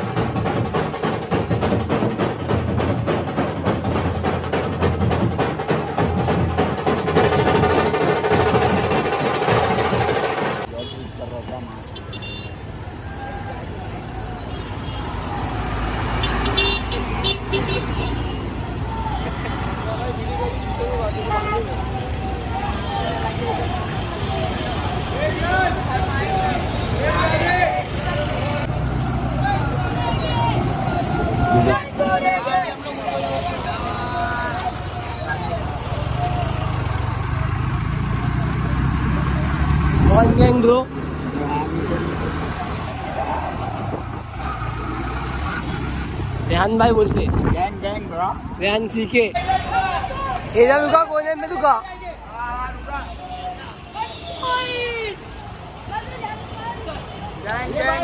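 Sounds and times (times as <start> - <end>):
dhol drumming: 0.0 - 10.7
vehicle engines running: 0.0 - 58.0
horns honking: 10.6 - 15.3, 16.1 - 28.7, 52.8 - 55.3
people's voices: 15.2 - 58.0.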